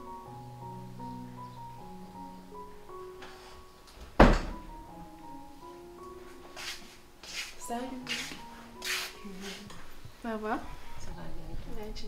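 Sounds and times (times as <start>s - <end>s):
soft background music: 0.0s - 12.0s
loud thump: 4.2s - 4.7s.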